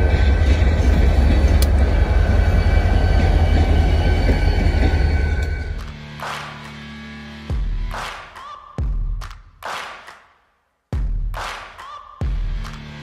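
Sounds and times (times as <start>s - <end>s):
diesel locomotive engine rumble: 0.0s - 5.8s
locomotive whine: 0.0s - 5.9s.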